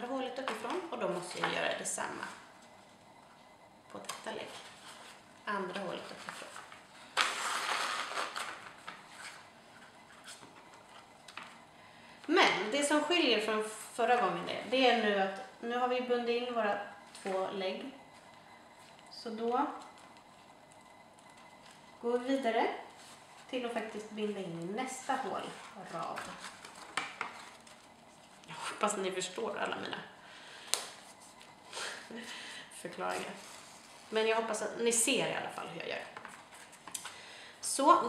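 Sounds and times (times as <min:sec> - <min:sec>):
paper rustling: 0:25.2 - 0:28.4.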